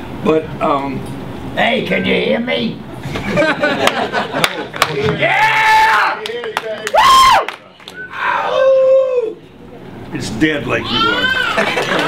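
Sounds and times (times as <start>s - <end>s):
person shouting whoops: 5.2s - 6.2s, 6.9s - 9.4s, 10.8s - 11.7s.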